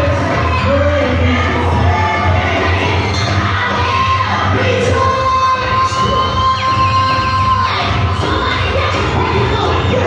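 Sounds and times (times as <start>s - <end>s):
congregation shouting and cheering: 0.0s - 10.0s
gospel praise music: 0.0s - 10.0s.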